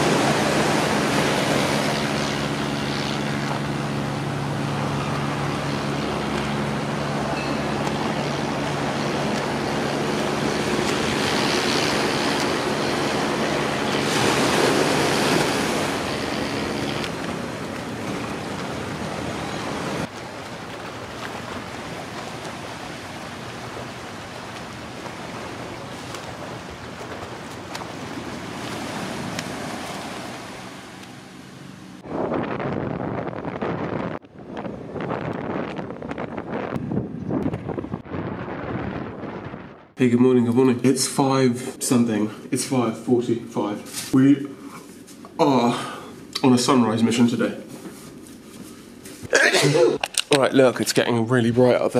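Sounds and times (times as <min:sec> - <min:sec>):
small waves washing onto sand: 0:00.0 - 0:31.3
low engine hum: 0:00.0 - 0:38.2.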